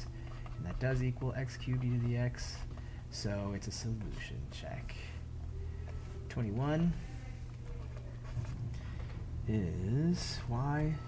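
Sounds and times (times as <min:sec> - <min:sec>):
steady low hum: 0:00.0 - 0:11.0
stylus writing on pen tablet: 0:00.0 - 0:11.0.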